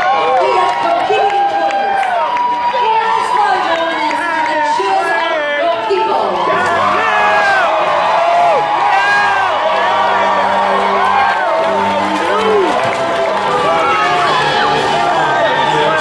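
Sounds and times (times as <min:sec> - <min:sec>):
audience cheering and shouting: 0:00.0 - 0:16.0.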